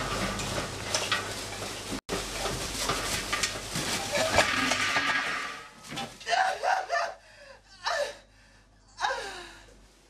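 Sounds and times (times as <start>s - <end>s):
man laughing manically: 6.3s - 7.2s.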